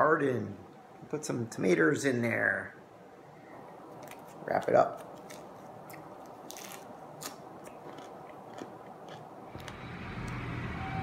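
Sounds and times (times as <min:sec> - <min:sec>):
low steady hum: 0:00.0 - 0:11.0
crisp chewing crunches: 0:04.0 - 0:09.8.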